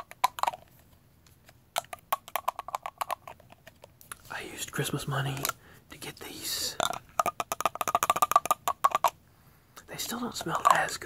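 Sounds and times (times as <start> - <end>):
fingernails tapping metal bottle: 6.8 - 9.2.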